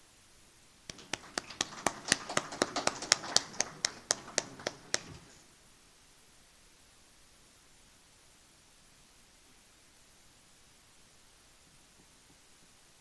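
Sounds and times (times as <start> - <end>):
audience applauding: 0.9 - 5.4
close clapping: 0.9 - 5.4.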